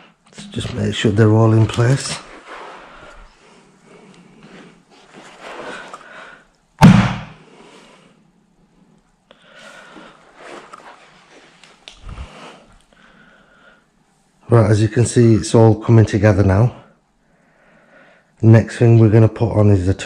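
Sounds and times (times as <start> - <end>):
soft dull thud: 6.8 - 7.3
sharp loud thump: 6.8 - 7.4.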